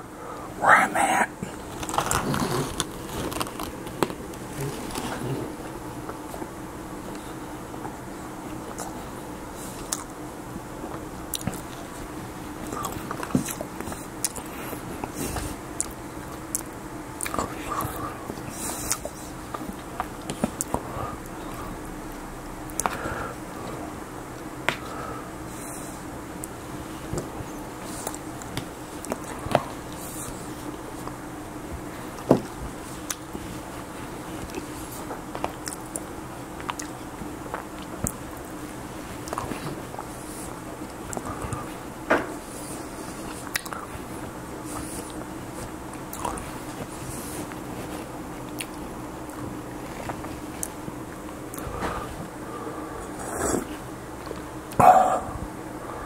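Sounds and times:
faint steady hum: 0.0 - 56.0
man chewing food: 0.7 - 56.0
chewing and mouth sounds: 9.6 - 10.1, 12.6 - 21.7, 32.0 - 33.7, 34.3 - 38.6, 39.2 - 41.7, 42.4 - 51.7
wet mouth clicks: 35.6 - 37.0, 43.5 - 43.8.

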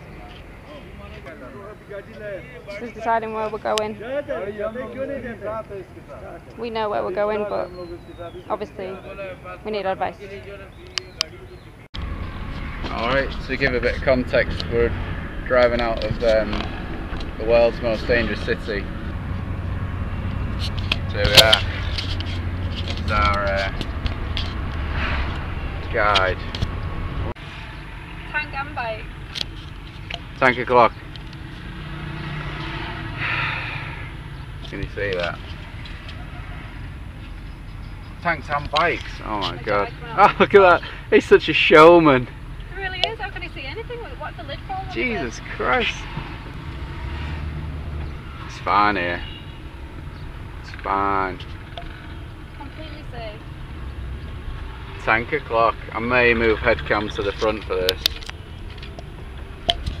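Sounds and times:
vehicle engine hum inside cab: 11.9 - 40.8, 41.7 - 60.0
faint rubbing and ticks: 15.6 - 26.7.

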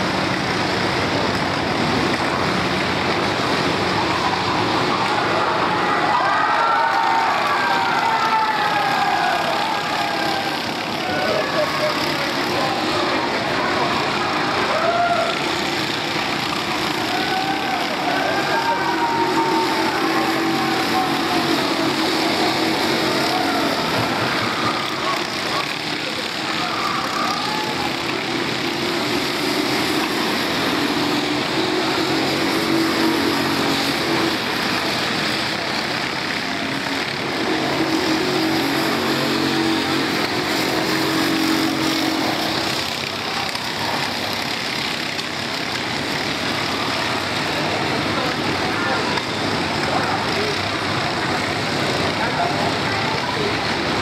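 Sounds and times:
indistinct voices: 0.0 - 54.0
kart engines buzzing: 0.0 - 54.0.

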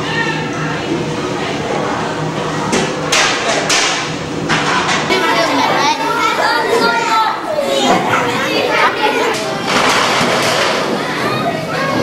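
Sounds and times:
children chattering: 0.0 - 3.1, 4.7 - 12.0.

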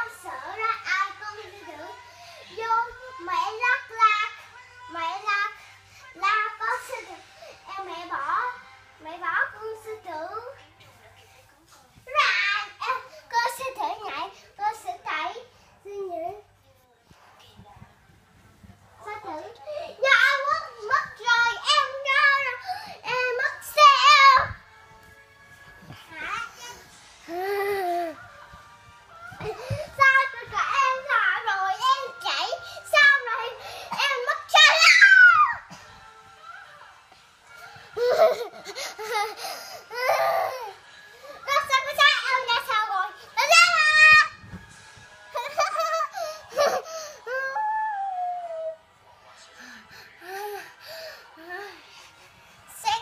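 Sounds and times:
girl singing: 0.0 - 10.6, 19.0 - 24.7, 25.9 - 35.7.

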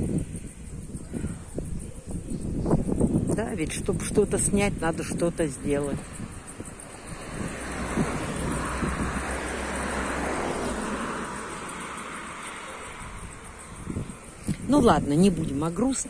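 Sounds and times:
car driving past: 5.8 - 14.4.

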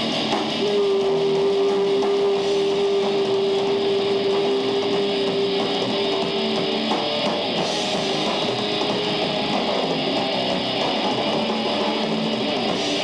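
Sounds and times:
heavy metal band playing live: 0.0 - 13.0
held steady note: 0.0 - 13.0.

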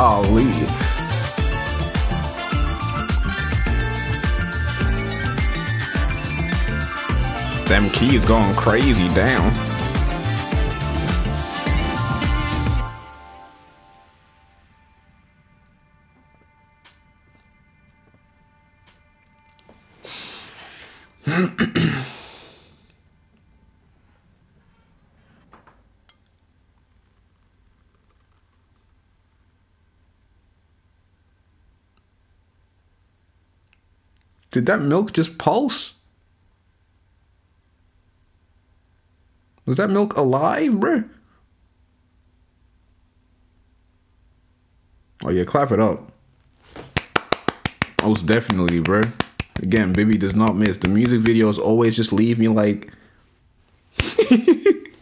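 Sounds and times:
person exhaling: 20.0 - 21.2, 21.9 - 23.0
person clapping hands quickly: 46.7 - 51.6, 54.0 - 54.3.

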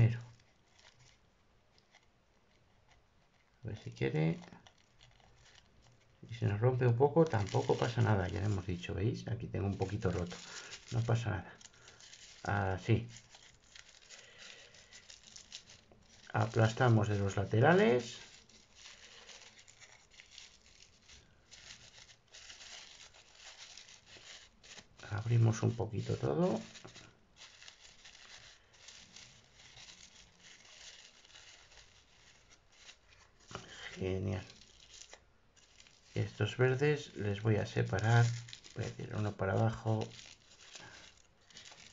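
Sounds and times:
tissue paper rustling and crinkling: 0.0 - 2.7, 3.3 - 41.9.

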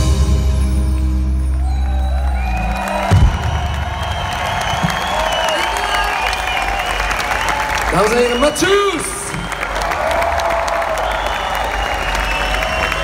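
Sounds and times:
live band low chord: 0.0 - 1.6
crowd cheering and applauding: 0.0 - 13.0
whoops and whistles: 1.6 - 7.5, 8.1 - 10.0, 10.8 - 13.0.

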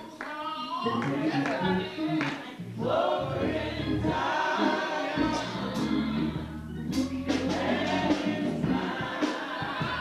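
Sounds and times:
choir singing: 0.8 - 10.0
low bass accompaniment: 5.2 - 9.0.

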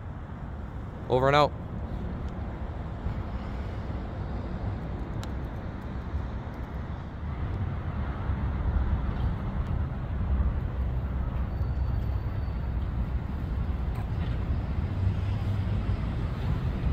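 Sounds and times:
road traffic rumble: 0.0 - 16.9.

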